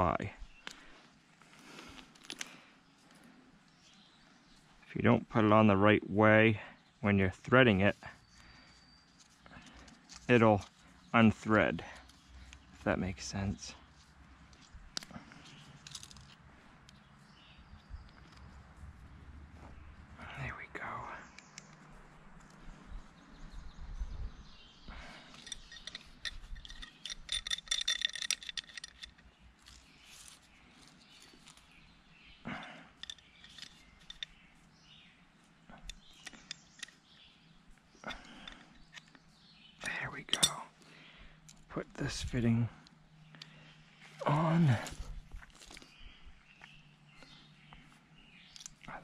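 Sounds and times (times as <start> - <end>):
handling clicks and rustles: 0.0 - 4.9, 7.4 - 20.1, 25.0 - 49.0.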